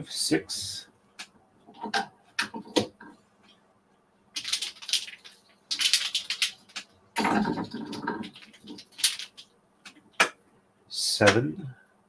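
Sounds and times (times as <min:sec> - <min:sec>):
bobbins clattering: 0:04.4 - 0:10.0
wooden bobbins clicking together: 0:04.4 - 0:10.3.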